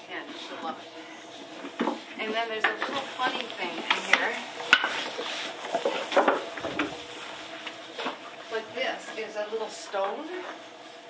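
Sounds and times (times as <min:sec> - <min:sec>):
brushes scraping horse coat: 0:01.4 - 0:11.0.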